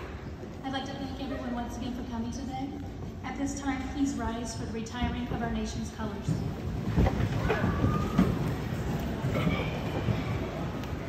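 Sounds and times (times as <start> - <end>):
knocks and clatter: 5.0 - 10.5
chairs shifting and feet shuffling: 6.0 - 11.0.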